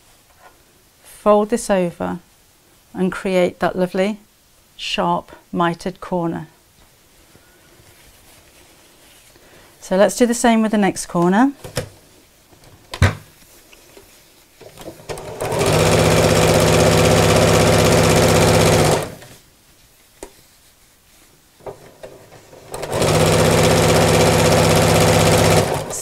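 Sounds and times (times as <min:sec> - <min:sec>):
sewing machine stitching: 0:14.6 - 0:19.3, 0:21.7 - 0:26.0.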